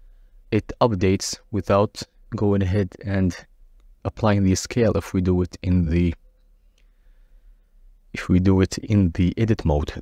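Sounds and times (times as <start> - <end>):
faint click: 6.4 - 7.0.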